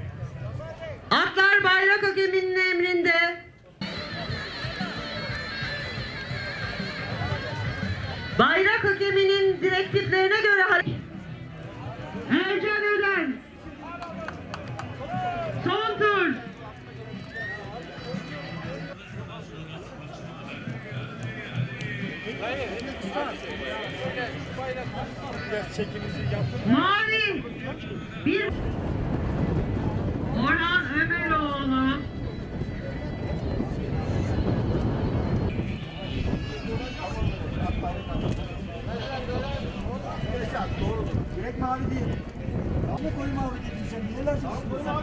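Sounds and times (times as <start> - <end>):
noisy outdoor background: 0.0 - 45.0.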